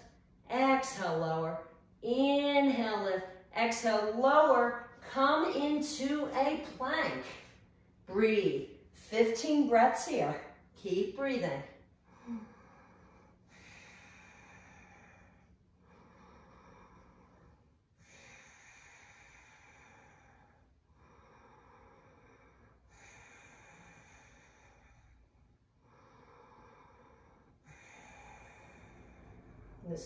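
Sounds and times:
woman breathing slowly: 0:11.7 - 0:30.0.

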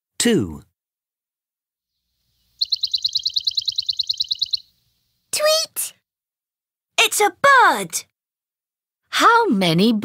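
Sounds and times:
rapid trill of high chirps: 0:02.2 - 0:05.2.

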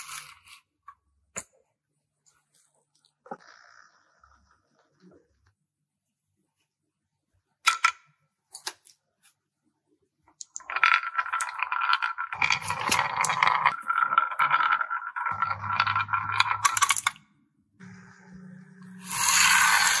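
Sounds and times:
balls rolling on wooden track: 0:10.4 - 0:17.2
low hum: 0:17.7 - 0:20.0.

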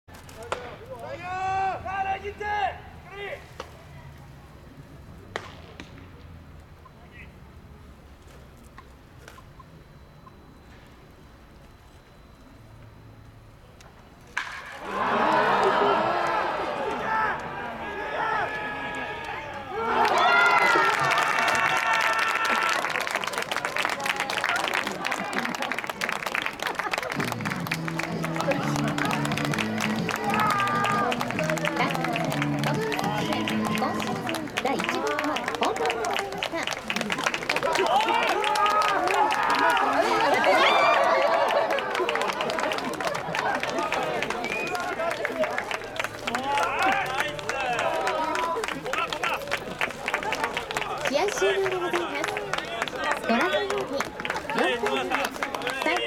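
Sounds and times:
low background murmur: 0:00.1 - 0:56.0
crowd clapping and cheering: 0:14.4 - 0:56.0
stadium music: 0:26.9 - 0:41.1.

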